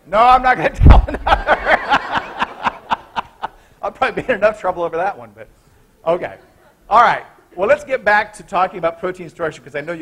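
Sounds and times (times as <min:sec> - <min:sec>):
man speaking: 0:00.0 - 0:01.4, 0:03.8 - 0:10.0.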